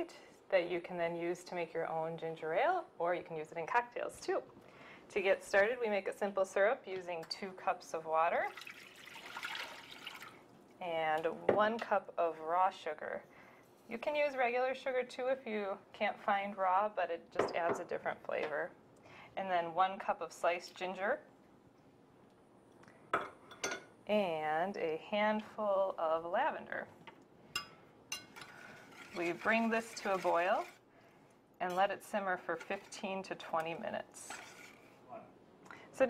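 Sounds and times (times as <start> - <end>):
water pouring into saucepan: 8.3 - 10.5, 28.4 - 30.8
spoon clinking against saucepan: 27.5 - 29.3.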